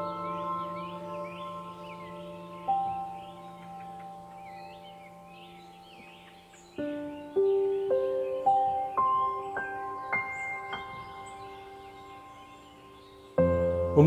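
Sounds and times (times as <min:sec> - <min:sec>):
ambient bell-like music: 0:00.0 - 0:14.0
faint birdsong chirping: 0:00.0 - 0:14.0.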